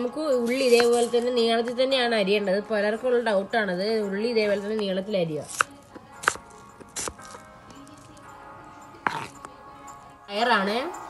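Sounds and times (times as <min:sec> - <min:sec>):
knife chopping on wooden board: 0:05.5 - 0:07.4, 0:09.0 - 0:09.4.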